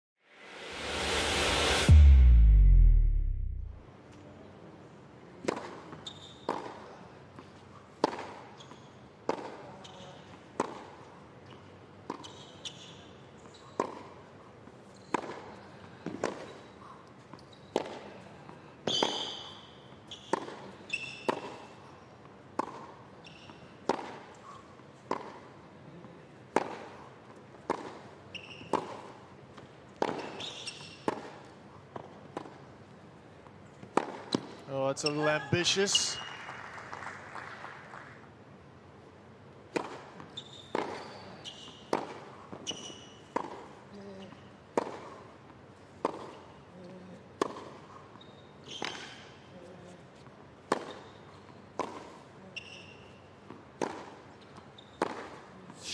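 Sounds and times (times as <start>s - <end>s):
tennis ball hit by rackets: 15.1s - 16.5s, 20.3s - 20.6s, 23.8s - 24.3s, 25.1s - 25.4s, 26.5s - 27.0s, 27.6s - 28.1s, 28.7s - 30.4s, 31.0s - 32.6s, 33.8s - 34.5s, 39.7s - 41.1s, 41.9s - 43.8s, 44.7s - 45.2s, 46.0s - 46.4s, 47.4s - 47.8s, 50.7s - 51.1s, 51.8s - 52.2s, 53.5s - 54.3s, 55.0s - 55.5s.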